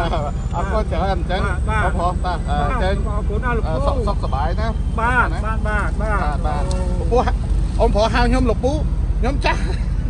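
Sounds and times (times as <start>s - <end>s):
men talking: 0.0s - 10.0s
steady low rumble: 0.0s - 10.0s.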